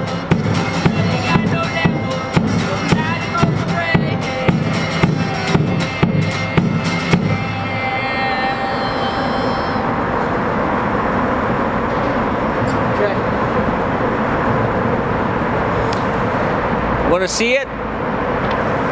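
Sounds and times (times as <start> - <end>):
drum hits: 0.0 - 7.7
strummed acoustic guitar chords: 0.0 - 10.5
city traffic noise: 0.0 - 18.9.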